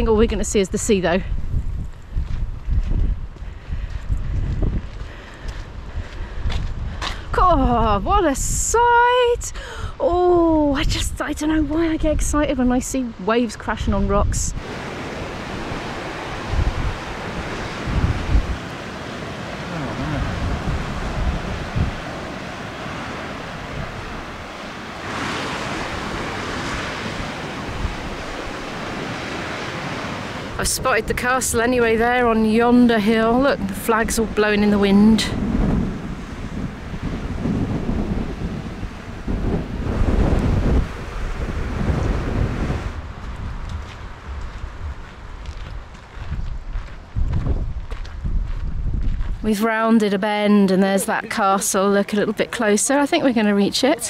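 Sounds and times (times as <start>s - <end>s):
wind buffeting microphone: 0.0s - 50.5s
surf breaking against rocks: 14.6s - 32.3s.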